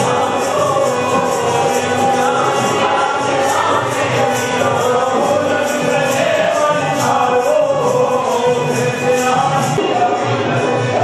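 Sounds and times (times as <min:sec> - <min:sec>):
group of voices singing: 0:00.0 - 0:11.0
steady percussive beat: 0:00.0 - 0:11.0.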